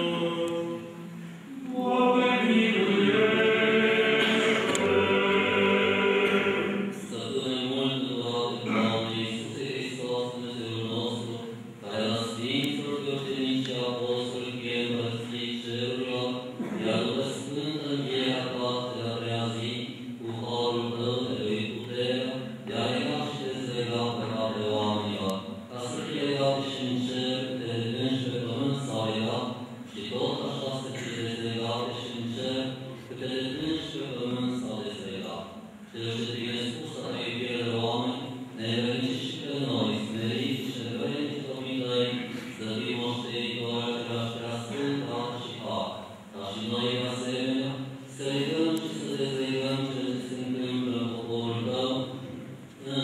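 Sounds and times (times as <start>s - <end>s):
liturgical chanting: 0.0s - 53.0s
man intoning prayers: 0.0s - 53.0s.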